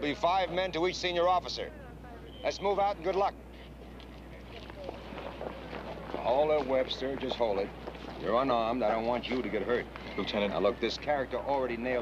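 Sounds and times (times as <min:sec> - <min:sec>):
low steady hum: 0:00.0 - 0:12.0
many footsteps and shoe scuffs: 0:03.1 - 0:11.2.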